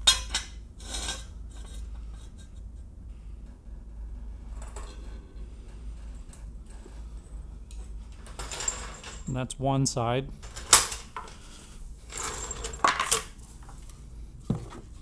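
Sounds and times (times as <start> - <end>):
low hum: 0.0 - 12.8.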